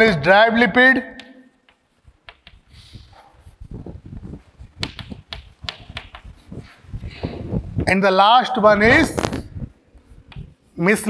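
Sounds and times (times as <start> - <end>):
sharp chalk clicks: 1.2 - 2.7, 4.7 - 6.4.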